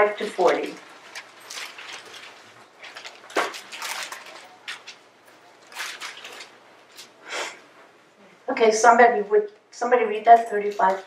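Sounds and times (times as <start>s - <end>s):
paper rustling: 0.0s - 7.2s.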